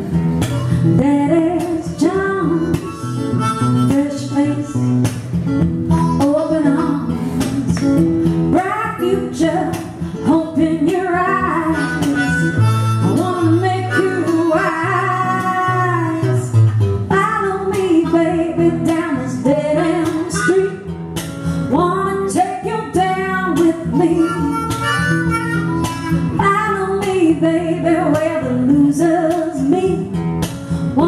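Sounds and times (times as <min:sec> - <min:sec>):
strummed acoustic guitar: 0:00.0 - 0:31.0
harmonica solo: 0:02.4 - 0:05.1, 0:05.9 - 0:06.2, 0:11.4 - 0:15.3, 0:20.2 - 0:20.9, 0:23.9 - 0:26.4.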